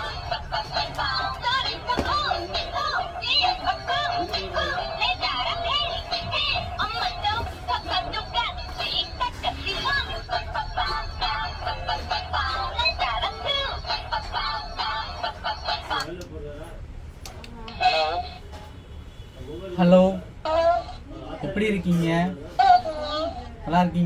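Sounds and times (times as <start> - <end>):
toy playing synthetic vocal song: 0.0 - 16.2, 20.4 - 21.1.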